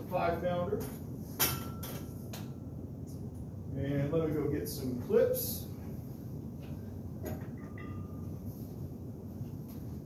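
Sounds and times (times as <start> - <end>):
steady low rumble: 2.1 - 10.0.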